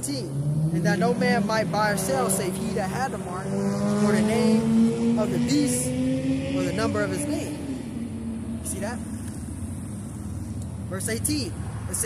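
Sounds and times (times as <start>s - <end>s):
low rumble of cars: 0.0s - 12.0s.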